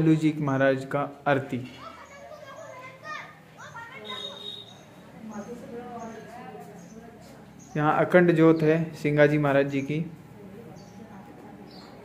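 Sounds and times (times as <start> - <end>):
children chattering and calling: 1.4 - 8.8, 9.4 - 12.0.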